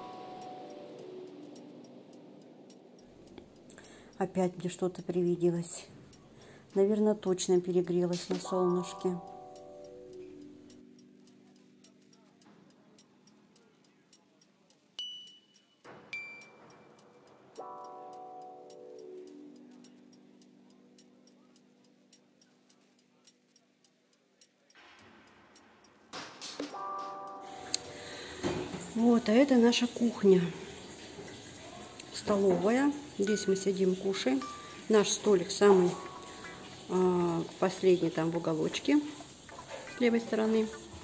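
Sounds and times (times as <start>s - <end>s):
clock-like ticking: 0.0s - 25.7s.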